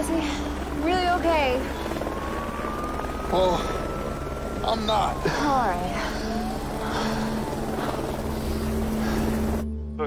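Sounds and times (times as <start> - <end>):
distant rumbling roar: 0.7 - 9.6.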